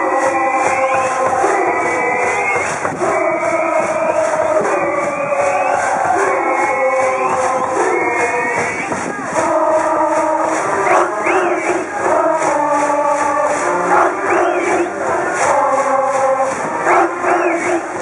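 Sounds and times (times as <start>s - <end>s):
brass band playing: 0.0s - 18.0s
crowd chanting and singing: 0.0s - 18.0s.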